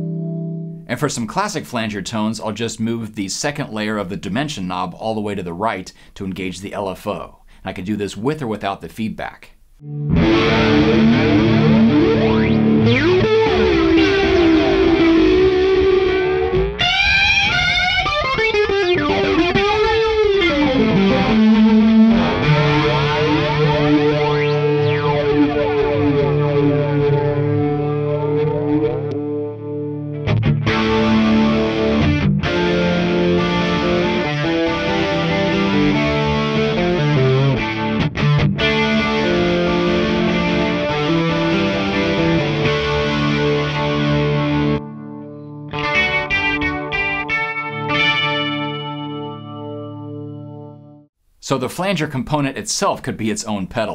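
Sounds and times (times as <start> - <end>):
electric guitar chords with flanger: 0.0 - 0.8, 9.8 - 51.1.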